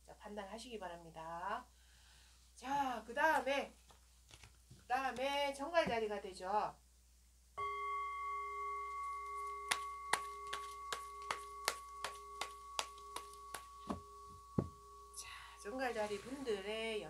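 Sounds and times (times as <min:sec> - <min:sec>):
bell-like ringing tone: 0:07.6 - 0:16.9.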